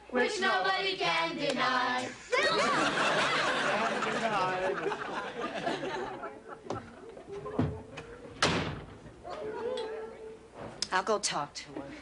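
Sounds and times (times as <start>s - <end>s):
door shutting: 7.6s - 9.2s.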